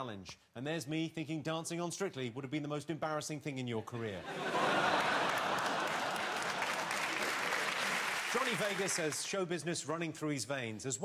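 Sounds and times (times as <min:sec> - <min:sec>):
studio audience applauding: 0:04.5 - 0:09.4.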